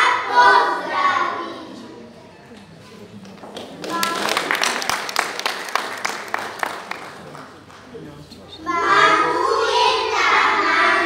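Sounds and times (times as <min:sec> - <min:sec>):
audience applauding: 0:03.2 - 0:08.2.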